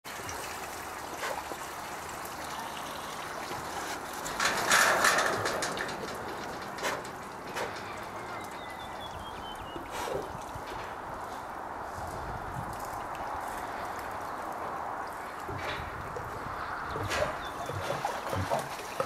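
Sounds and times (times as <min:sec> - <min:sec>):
water sloshing and trickling: 0:00.0 - 0:19.0.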